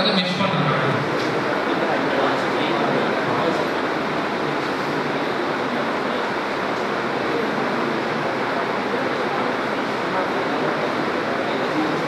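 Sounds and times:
hall room noise: 0:00.0 - 0:12.0
murmur of voices: 0:00.0 - 0:12.0.

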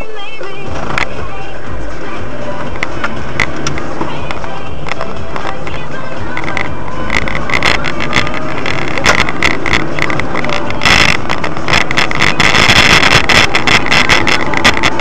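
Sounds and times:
road and wind noise: 0:00.0 - 0:15.0
clicks and rattles: 0:02.6 - 0:15.0.

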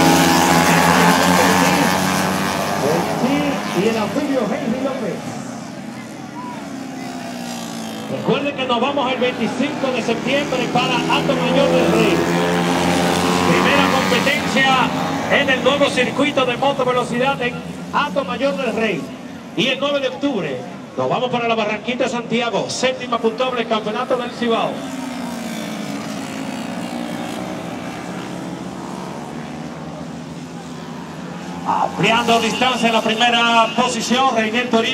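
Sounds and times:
motorcycle engines buzzing: 0:00.0 - 0:34.9.

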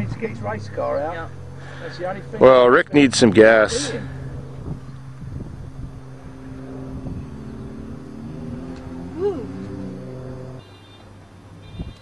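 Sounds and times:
car engine running: 0:00.0 - 0:10.6.

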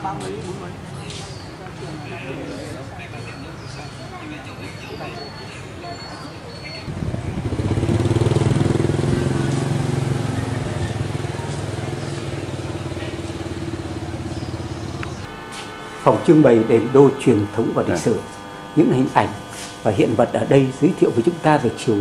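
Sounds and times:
vehicle engine humming: 0:06.8 - 0:22.0.

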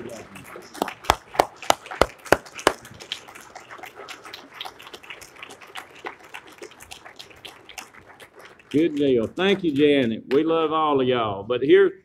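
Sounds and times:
loud hand claps: 0:00.0 - 0:03.6
scattered applause: 0:00.0 - 0:10.5.

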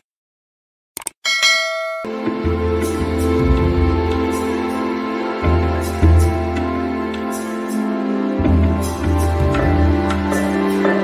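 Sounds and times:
notification bell ding: 0:01.3 - 0:02.1.

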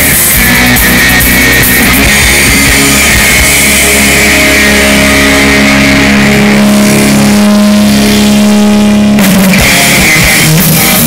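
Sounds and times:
distorted electric guitar and bass chord: 0:00.0 - 0:11.0.

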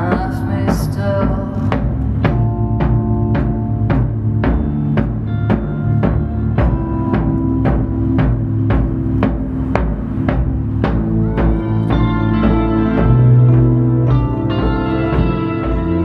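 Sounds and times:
drum struck with mallets: 0:00.0 - 0:16.0
live band playing: 0:00.0 - 0:16.0.

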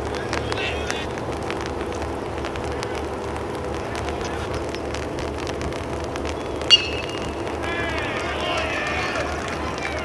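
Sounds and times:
faint voices: 0:00.0 - 0:10.0
outdoor background noise: 0:00.0 - 0:10.0
metal bat hitting ball: 0:06.7 - 0:08.0.

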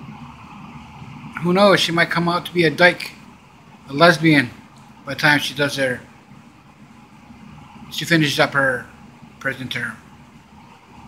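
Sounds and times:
faint low background hum: 0:00.0 - 0:11.0
man speaking: 0:01.4 - 0:03.2, 0:03.9 - 0:06.1, 0:07.9 - 0:10.0.

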